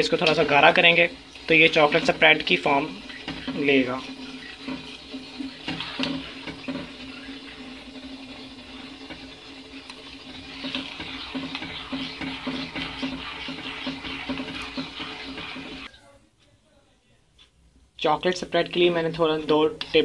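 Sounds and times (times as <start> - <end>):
spoon scraping in pot: 0.0 - 16.0.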